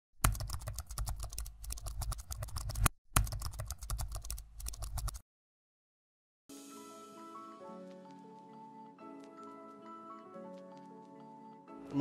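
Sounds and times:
rapid keyboard typing: 0.2 - 5.2.

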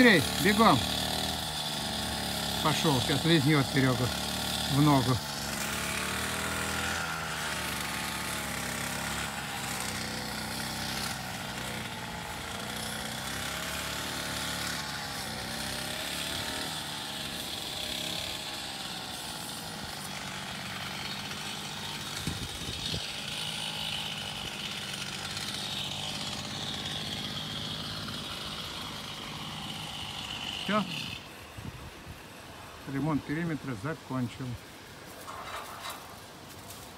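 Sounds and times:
small petrol engine running: 0.0 - 31.7, 32.8 - 36.9.

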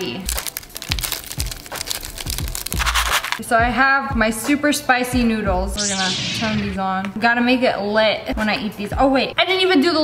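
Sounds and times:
foil packet crinkling: 0.0 - 3.4.

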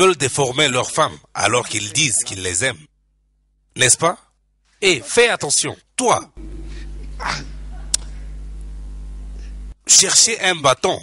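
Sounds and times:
low electrical hum: 0.0 - 11.0
person speaking: 1.4 - 2.7, 4.8 - 8.3.

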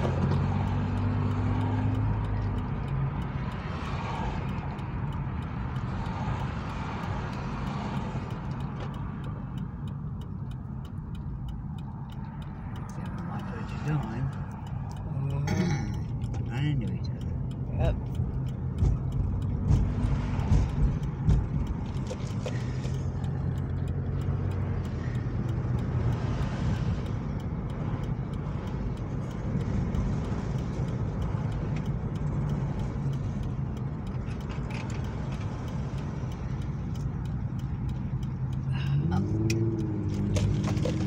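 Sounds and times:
car engine and road noise: 0.0 - 41.0.

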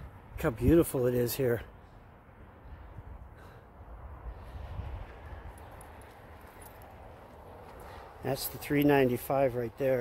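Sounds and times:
wind rumble on microphone: 2.6 - 7.6
faint footsteps: 4.7 - 10.0.

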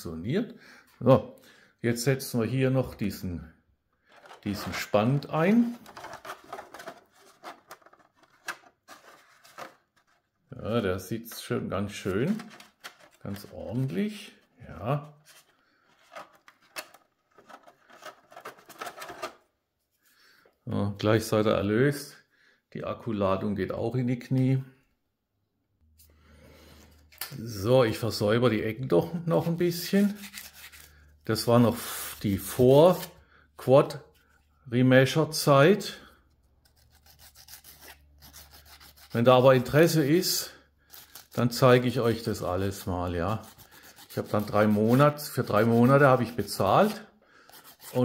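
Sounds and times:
plastic parts clicking and rubbing: 4.1 - 4.8, 5.5 - 10.4, 12.2 - 19.5
sandpaper scratching plastic: 5.6 - 10.2, 29.8 - 31.0, 36.6 - 39.8, 43.1 - 48.0.

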